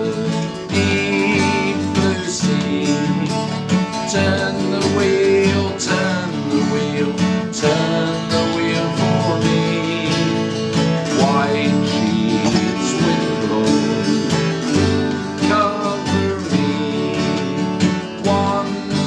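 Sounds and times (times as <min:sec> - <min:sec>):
acoustic guitar strumming: 0:00.0 - 0:19.0
people singing together: 0:00.0 - 0:19.0.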